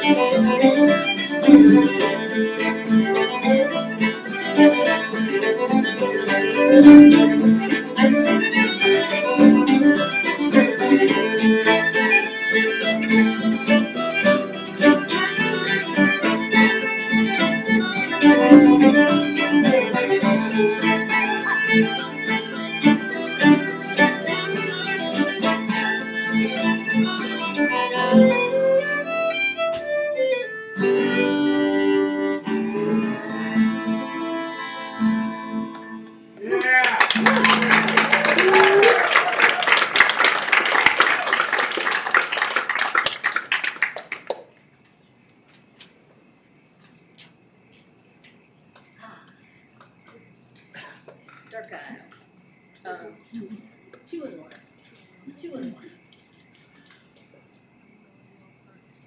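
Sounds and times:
celtic tune on fiddles: 0.0 - 36.3
acoustic guitar: 0.0 - 36.5
piano: 15.8 - 25.7
audience applause: 36.4 - 44.5.

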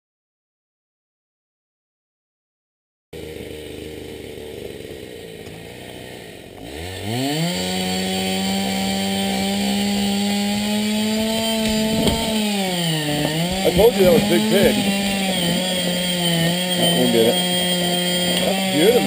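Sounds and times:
chainsaw engine revving: 3.2 - 19.0.

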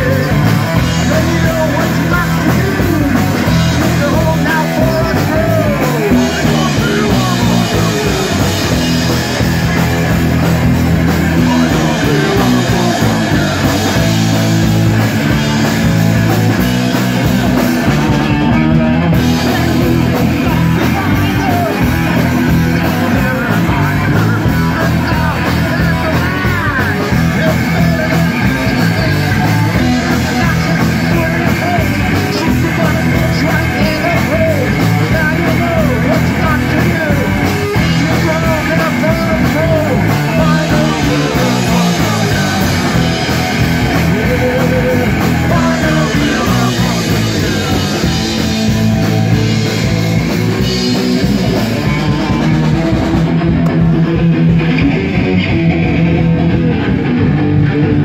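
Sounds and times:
person singing: 0.0 - 55.4
drums: 0.0 - 58.0
electric bass: 0.0 - 58.0
electric guitar: 0.0 - 58.0.

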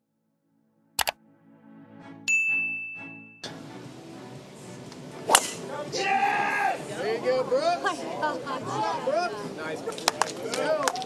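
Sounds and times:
soft low music pad: 1.2 - 9.7
notification bell ding: 2.3 - 3.4.

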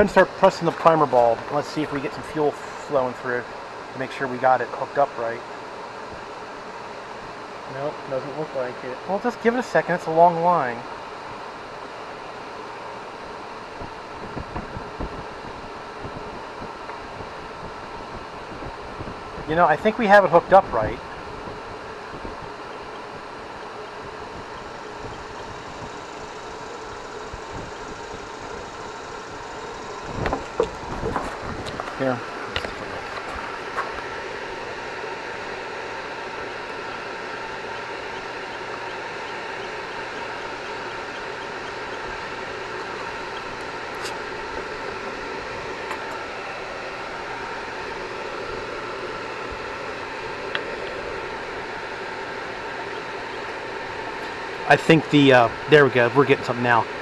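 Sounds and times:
steady background hum: 0.0 - 57.0.

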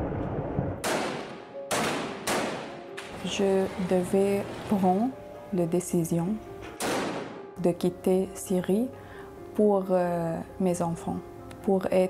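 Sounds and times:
low rumble: 0.0 - 0.8
gunshots echoing: 0.8 - 3.1, 6.8 - 7.4.

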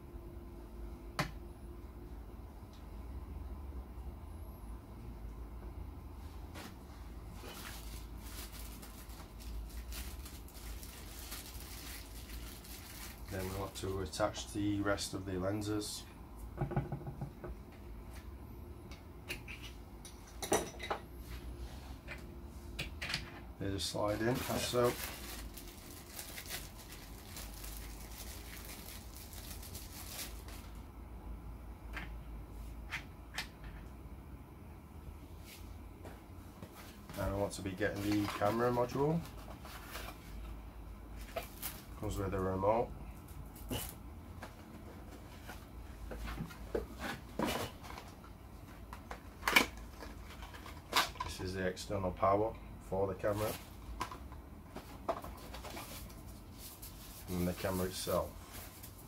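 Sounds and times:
steady low hum: 0.0 - 59.0
crackly rustle of handled parts: 6.2 - 14.8, 19.0 - 30.9, 35.4 - 51.6, 53.2 - 59.0
plastic packaging crinkling: 7.4 - 13.8, 24.0 - 30.8, 41.2 - 42.0.

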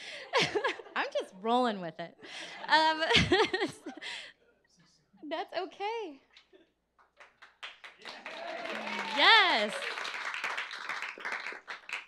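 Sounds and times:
audience clapping: 7.0 - 12.0.

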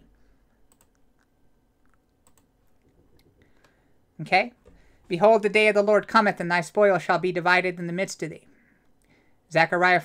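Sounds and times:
computer keyboard clicks: 0.7 - 1.0, 2.2 - 3.7.

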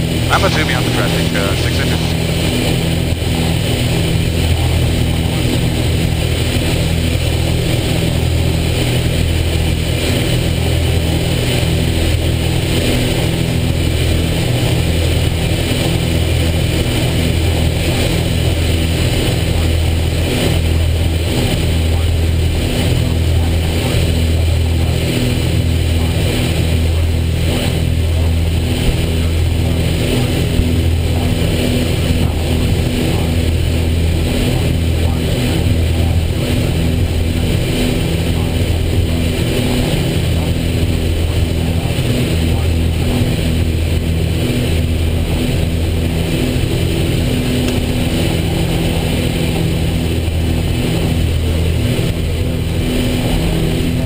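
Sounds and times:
aircraft engines and propellers droning: 0.0 - 54.0.

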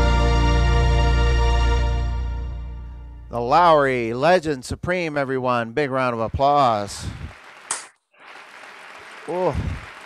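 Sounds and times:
man clapping: 7.2 - 10.0.

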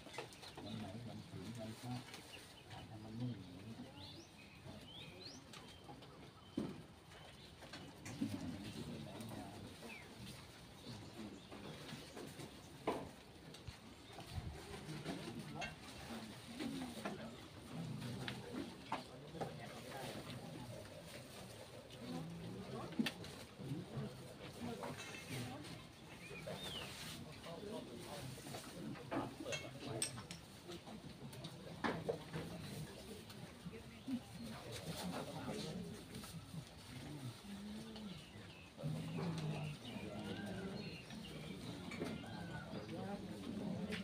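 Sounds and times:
faint low murmur: 0.0 - 44.0
birds chirping: 26.0 - 27.0.

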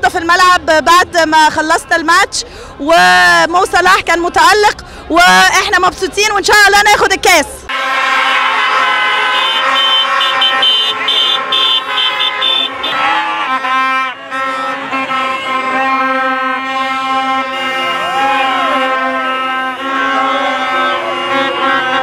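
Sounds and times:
car horns: 7.7 - 22.0
many horns blowing: 7.7 - 22.0
plastic fan trumpets: 7.7 - 22.0.

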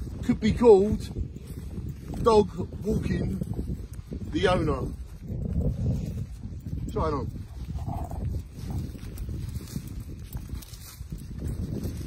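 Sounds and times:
footsteps on stubble field: 0.0 - 12.0
wind buffeting microphone: 0.0 - 12.0.

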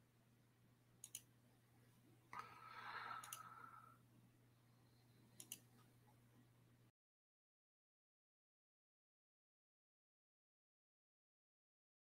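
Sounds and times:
computer mouse clicks: 1.0 - 1.3, 3.1 - 3.6, 5.4 - 5.9.

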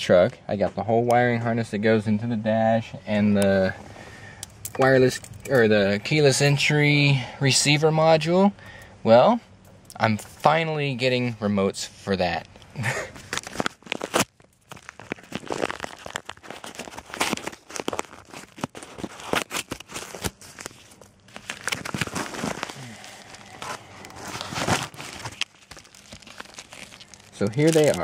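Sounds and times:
paper envelope tearing and rustling: 13.2 - 28.0.

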